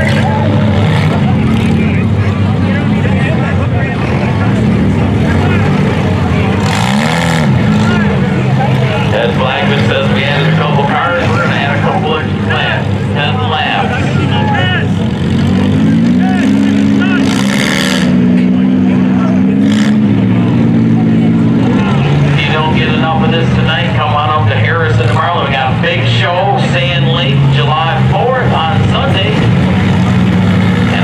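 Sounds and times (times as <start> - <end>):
race car engines running: 0.0 - 31.0
engine revving to higher pitch: 4.0 - 31.0.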